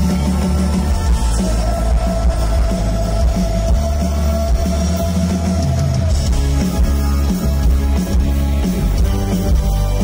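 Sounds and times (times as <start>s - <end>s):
rock band playing loudly: 0.0s - 10.0s.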